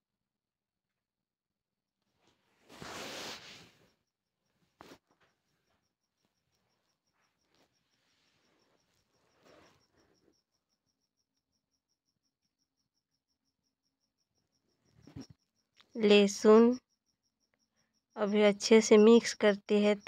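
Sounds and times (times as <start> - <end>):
soft rustle: 2.2 - 3.9, 4.6 - 10.2
cricket chirping: 3.8 - 20.0.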